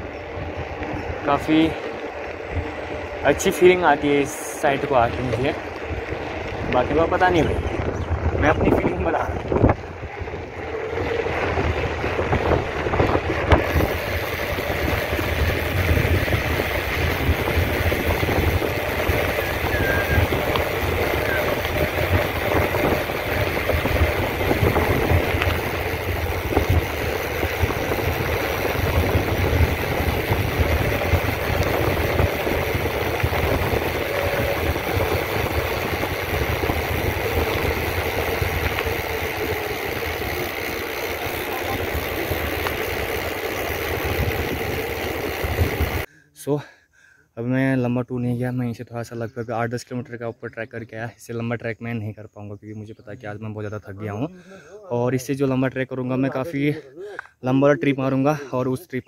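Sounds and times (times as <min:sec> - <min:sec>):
bike tyres rumbling on concrete: 0:00.0 - 0:46.1
wind buffeting microphone: 0:00.0 - 0:46.1.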